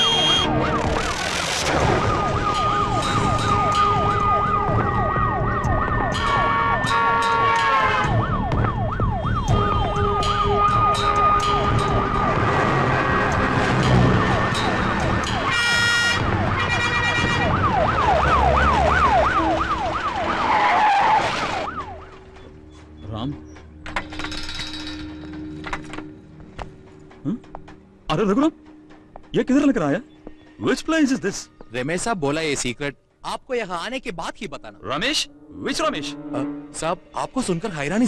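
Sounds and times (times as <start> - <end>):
car horns blasting: 0.0 - 0.5, 6.2 - 8.2, 10.0 - 17.6
siren yelping: 0.0 - 22.2
traffic: 0.0 - 31.8.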